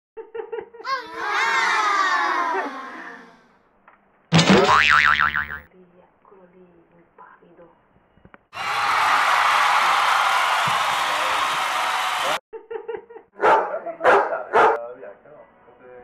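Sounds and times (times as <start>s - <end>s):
dog barking: 13.4s - 14.8s.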